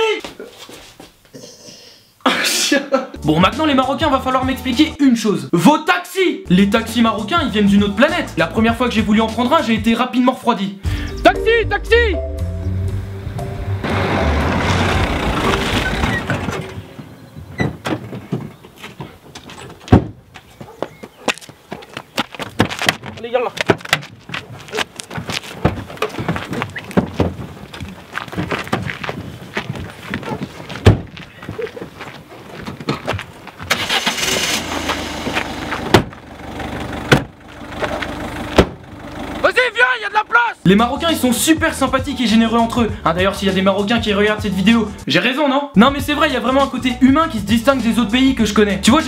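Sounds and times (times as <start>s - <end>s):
background music: 3.2s - 5.0s, 6.5s - 10.0s, 10.8s - 15.4s, 40.7s - 49.0s
car engine starting and running: 12.3s - 18.7s, 33.6s - 40.7s
car doors slamming: 13.8s - 20.2s, 30.8s - 31.2s, 33.7s - 36.3s, 37.0s - 38.9s
tyres crunching on gravel: 13.9s - 40.6s.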